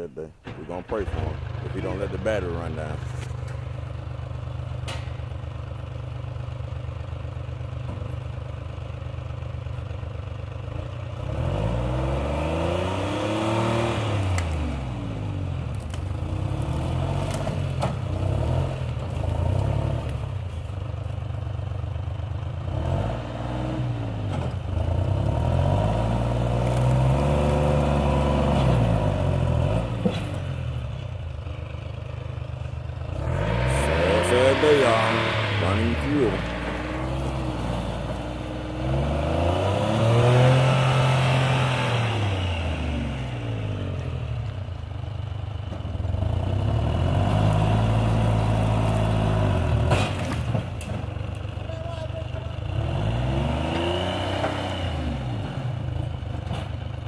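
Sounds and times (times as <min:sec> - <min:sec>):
diesel engine idling and revving: 0:00.0 - 0:57.0.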